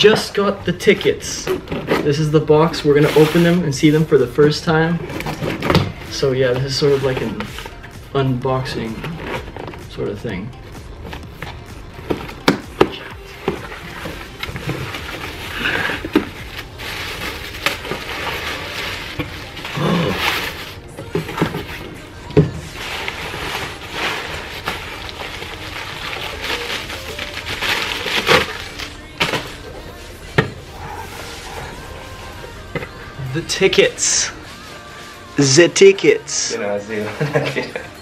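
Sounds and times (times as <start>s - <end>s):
packing paper rustling and crackling: 11.4s - 30.2s.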